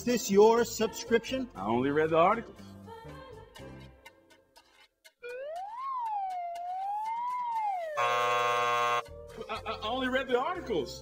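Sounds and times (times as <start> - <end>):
comic whistle sliding in pitch: 5.3 - 9.0.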